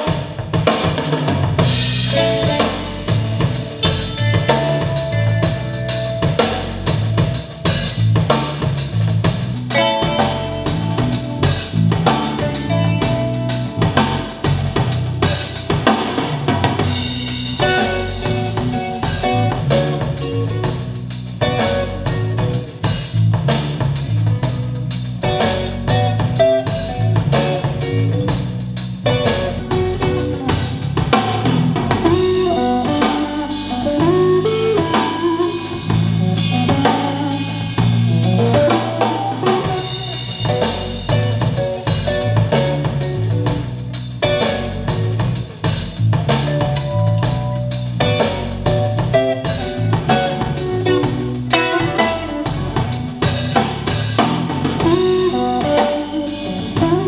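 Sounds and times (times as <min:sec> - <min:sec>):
music with drums through speakers: 0:00.0 - 0:57.0.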